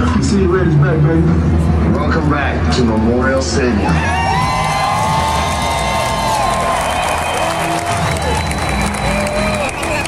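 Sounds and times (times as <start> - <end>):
stadium crowd cheering: 3.6 - 10.0
long held whoops: 4.0 - 10.0.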